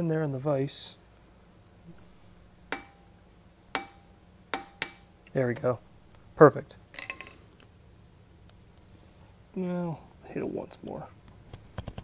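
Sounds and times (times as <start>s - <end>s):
hammer striking metal punch: 2.7s - 5.7s.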